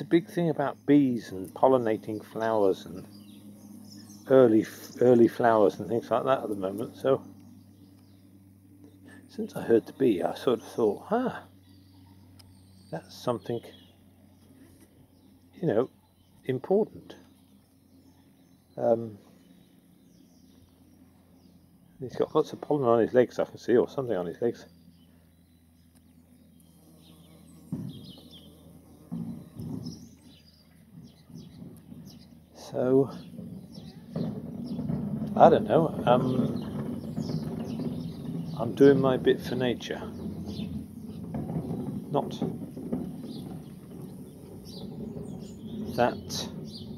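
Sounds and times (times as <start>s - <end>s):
distant bird chirps: 0.0s - 46.9s
steady low rumble: 0.0s - 46.9s.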